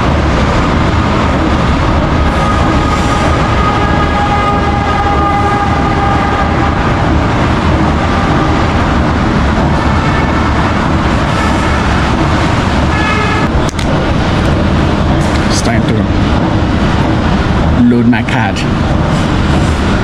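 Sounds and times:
train rumbling: 0:00.0 - 0:20.0.

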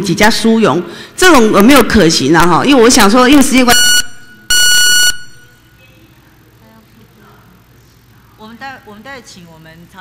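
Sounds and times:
timer high steady beep: 0:03.7 - 0:05.7.

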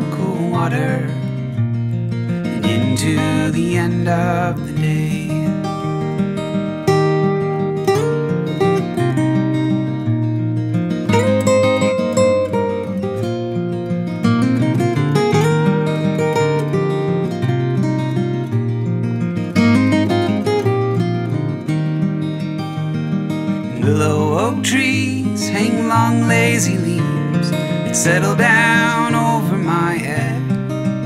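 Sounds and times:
slow acoustic guitar music: 0:00.0 - 0:31.0.

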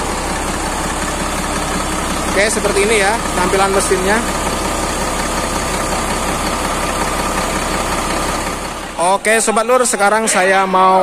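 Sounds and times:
diesel bus engine idling: 0:00.0 - 0:11.0.

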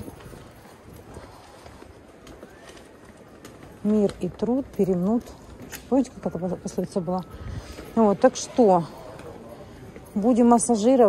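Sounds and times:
high heels on pavement: 0:00.0 - 0:11.0
street hum: 0:00.0 - 0:11.0.

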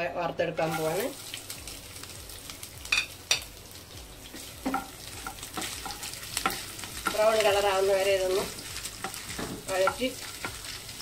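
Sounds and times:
food sizzling in hot oil: 0:00.0 - 0:11.0
utensils clicking against pan: 0:08.2 - 0:10.8.

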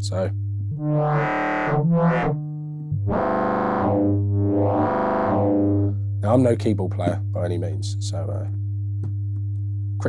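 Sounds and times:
synthesizer notes: 0:00.0 - 0:08.4
steady low tone: 0:00.0 - 0:10.0.

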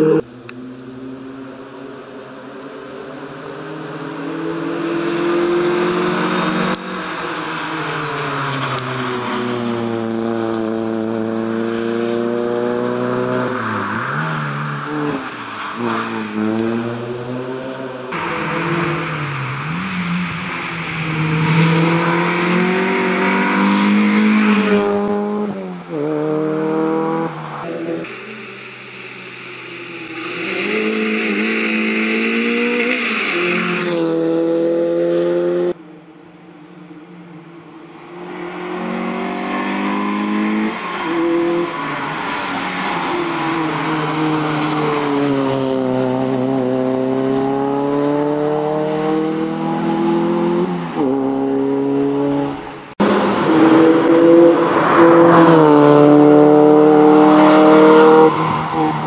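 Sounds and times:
rally car engine revving: 0:03.0 - 0:35.8, 0:38.1 - 0:59.0.

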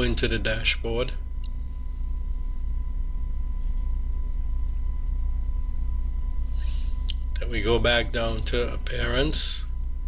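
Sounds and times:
faint thin steady tone: 0:00.0 - 0:10.0
low electrical hum: 0:00.0 - 0:10.0.

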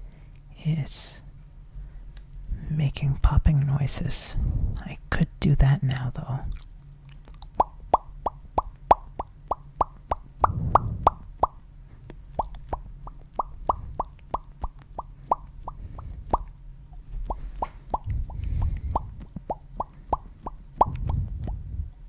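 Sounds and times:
mouth popping: 0:06.5 - 0:11.6, 0:12.4 - 0:16.5, 0:17.2 - 0:21.7.

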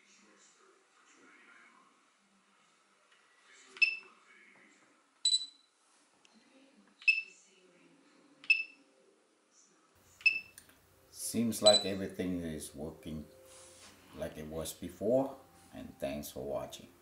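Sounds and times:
short electronic beeps: 0:05.3 - 0:05.7, 0:11.6 - 0:11.9.

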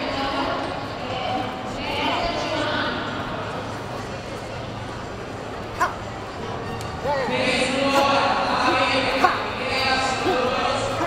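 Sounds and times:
indoor sports hall din: 0:00.0 - 0:11.0.

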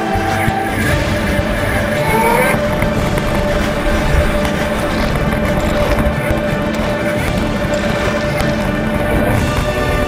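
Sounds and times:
bike rumbling over dirt: 0:00.0 - 0:10.0.

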